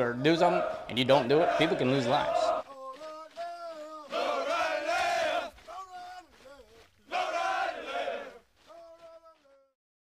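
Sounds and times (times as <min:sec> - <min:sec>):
group shouting in unison: 0:00.5 - 0:02.6, 0:03.6 - 0:06.1, 0:07.1 - 0:08.4.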